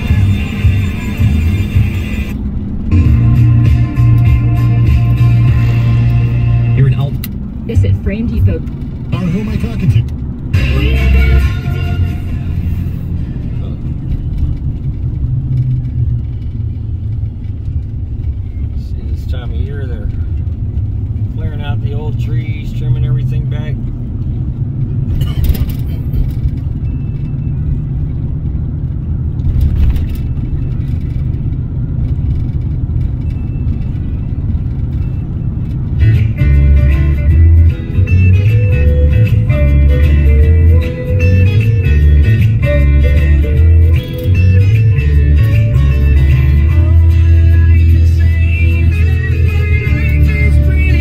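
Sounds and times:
car road rumble: 0.0 - 51.0.

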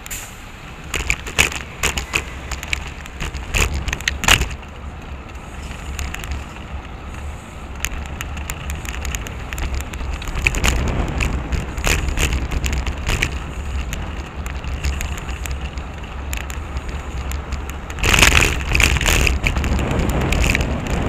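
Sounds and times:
wind rumble on microphone: 0.0 - 21.0
bicycle clicks and rattles: 0.8 - 21.0.

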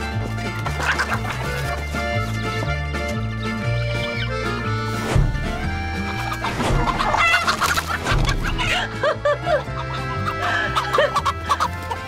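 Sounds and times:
background music: 0.0 - 12.0
chickens clucking: 0.0 - 12.0.

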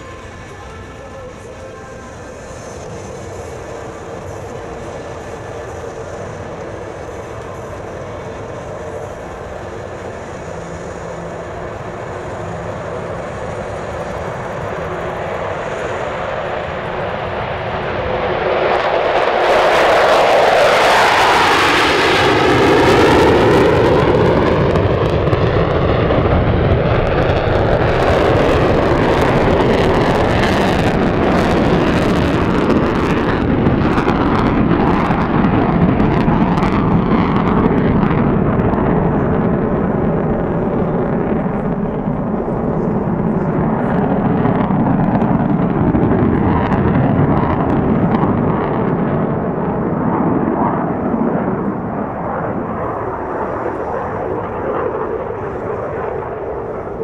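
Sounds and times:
fighter jets taking off: 0.0 - 57.0.

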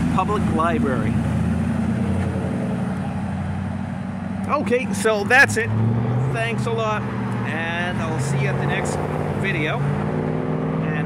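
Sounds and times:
traffic engine hum: 0.0 - 11.0.

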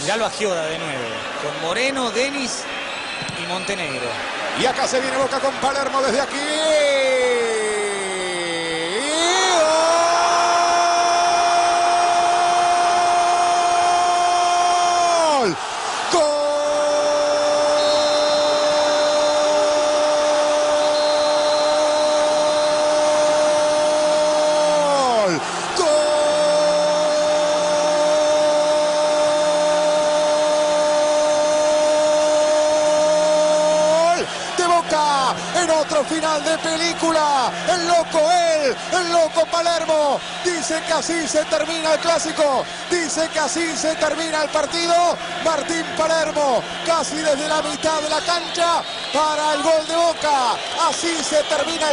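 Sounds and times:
crowd noise: 0.0 - 51.9.

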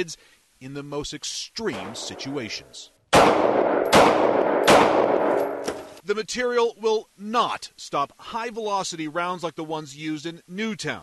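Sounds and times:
pistol shots with reverberant tail: 3.1 - 5.8.

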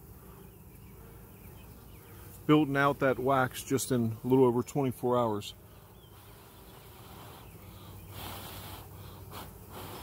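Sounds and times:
bees humming: 0.0 - 10.0
person breathing: 6.9 - 10.0.

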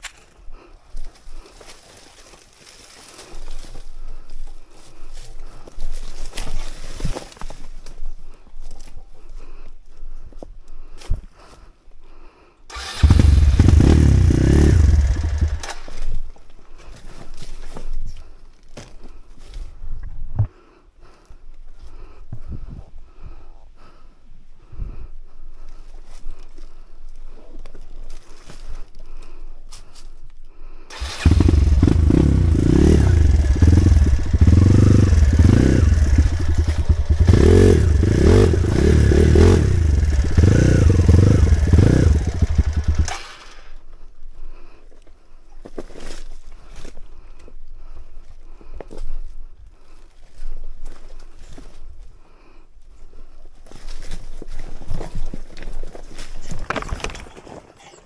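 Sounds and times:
dirt bike engine revving: 12.7 - 16.0, 30.9 - 43.8
bike rattling over rocks: 54.5 - 58.0.

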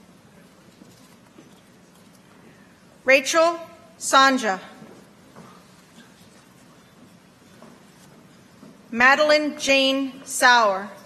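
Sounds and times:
footsteps of hard shoes on stage: 0.1 - 10.6.

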